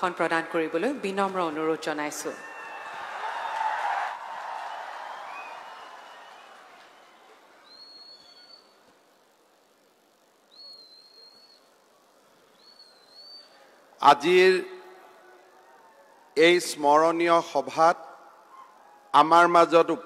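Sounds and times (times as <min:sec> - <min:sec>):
applause: 0:02.5 - 0:07.5
high whistled calls: 0:05.3 - 0:08.8, 0:10.5 - 0:11.8, 0:12.4 - 0:13.6.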